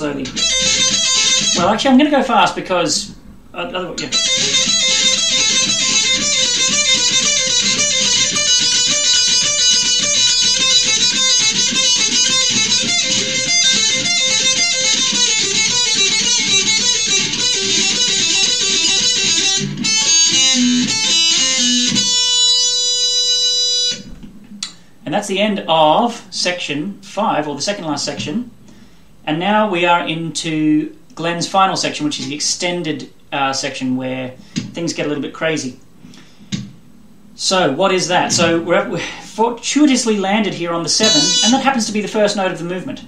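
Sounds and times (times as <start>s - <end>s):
electric guitar heavy metal lead: 0.0s - 24.4s.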